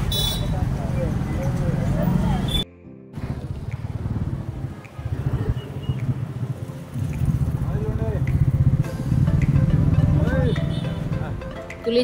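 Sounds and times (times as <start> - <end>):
car and motorbike engines passing: 0.0 - 2.6, 3.2 - 11.4.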